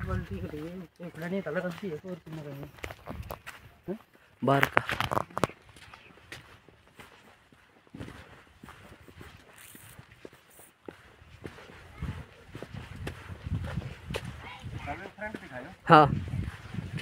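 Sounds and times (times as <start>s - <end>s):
footsteps on dirt path: 0.0s - 17.0s
low rumbling on microphone: 11.9s - 14.9s, 16.1s - 17.0s.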